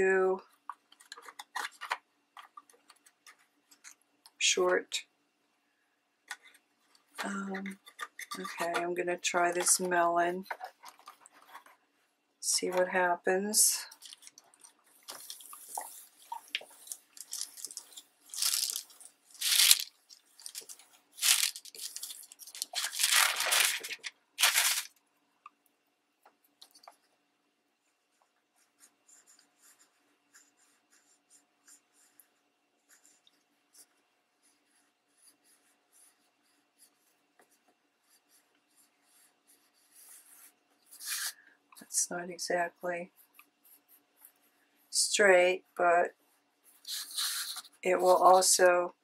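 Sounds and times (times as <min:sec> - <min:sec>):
crayon scratching on paper: 0:07.6 - 0:09.9, 0:28.6 - 0:37.2, 0:38.0 - 0:41.4, 0:46.7 - 0:48.4
paper rustling and crinkling: 0:13.9 - 0:25.0.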